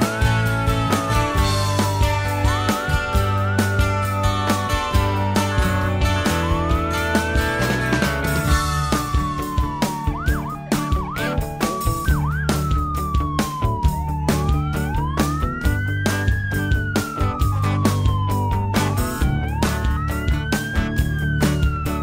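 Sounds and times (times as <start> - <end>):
electronic siren wailing: 0.0 - 22.0
music with steady beat: 0.0 - 22.0
siren yelps: 0.0 - 22.0.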